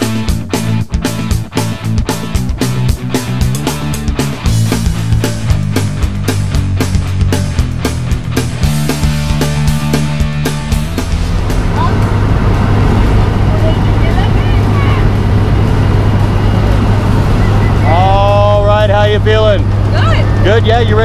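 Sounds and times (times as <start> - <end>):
airplane engines and propellers droning: 0.0 - 21.0
rock music: 0.0 - 21.0.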